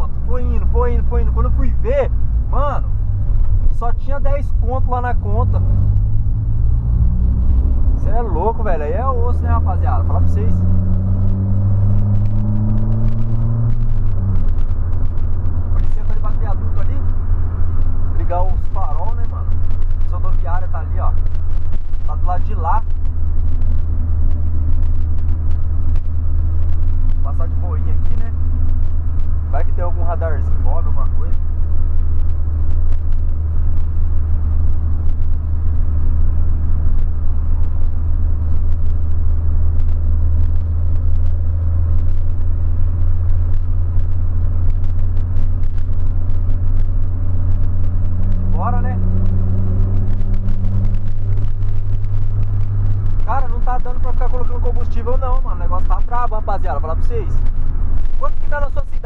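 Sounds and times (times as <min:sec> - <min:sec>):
car engine and road rumble: 0:00.0 - 0:59.0
driver vocal sounds: 0:07.9 - 0:10.7.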